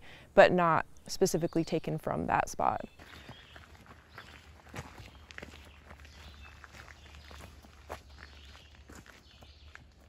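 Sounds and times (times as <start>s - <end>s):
footsteps on gravel: 2.9s - 10.0s.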